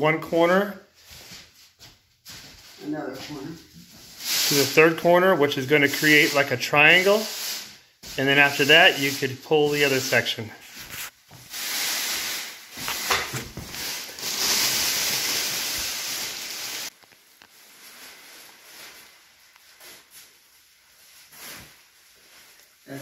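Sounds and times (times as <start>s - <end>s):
plastic sheeting rustling: 1.0s - 23.0s.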